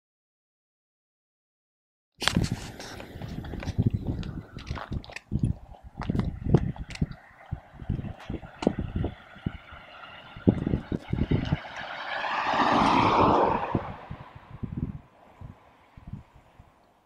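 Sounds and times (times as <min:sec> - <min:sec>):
small car passing: 0:06.3 - 0:17.0.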